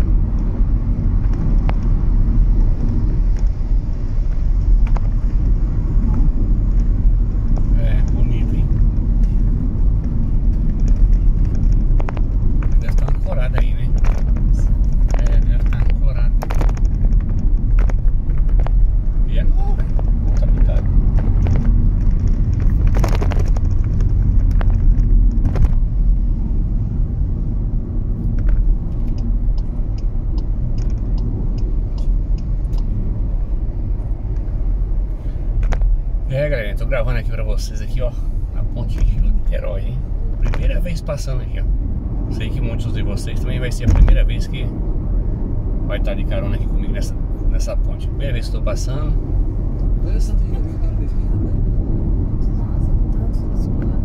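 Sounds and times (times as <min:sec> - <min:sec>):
car tyres and engine rumble: 0:00.0 - 0:54.0.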